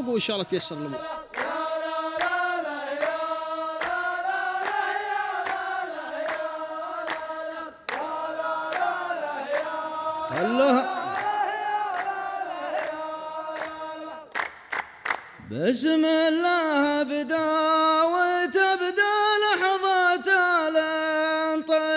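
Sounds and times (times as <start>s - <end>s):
men chanting in unison: 0.0s - 14.4s
hand claps: 1.3s - 15.5s.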